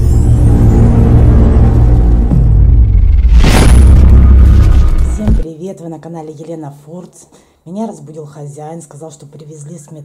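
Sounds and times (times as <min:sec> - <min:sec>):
music: 0:00.0 - 0:05.4
whoosh: 0:00.1 - 0:05.4
deep booming rumble: 0:01.5 - 0:05.4.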